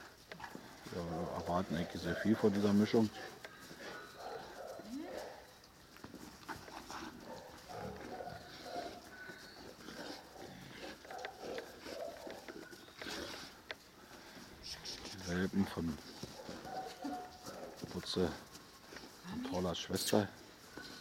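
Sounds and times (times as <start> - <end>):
dogs making low vocal sounds: 0.0 - 21.0.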